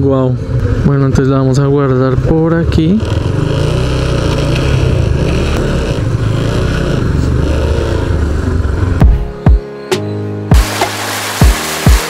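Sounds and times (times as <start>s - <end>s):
motorcycle engine running: 0.4s - 9.4s.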